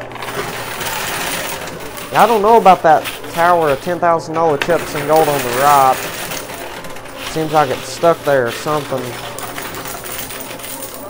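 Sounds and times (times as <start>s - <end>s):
coins scraping and clinking: 0.0s - 11.0s
pusher shelf mechanical whirr: 0.0s - 11.0s.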